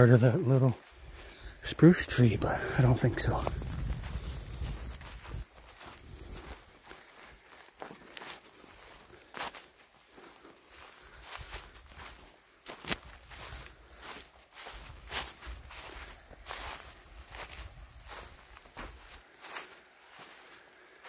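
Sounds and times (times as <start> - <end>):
footsteps crunching on dead leaves: 0.0 - 21.0.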